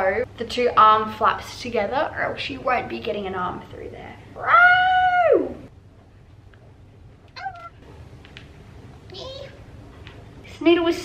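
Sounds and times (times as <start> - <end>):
high-pitched vocal call: 7.4 - 7.8.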